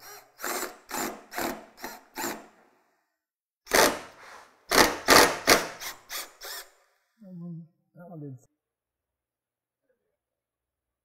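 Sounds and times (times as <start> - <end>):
impact driver bursts: 3.7 - 6.8.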